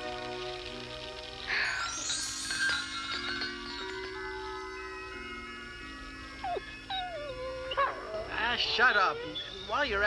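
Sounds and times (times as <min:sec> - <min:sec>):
soft sustained music chords: 0:00.0 - 0:10.0
cartoon dog whining: 0:06.4 - 0:09.7.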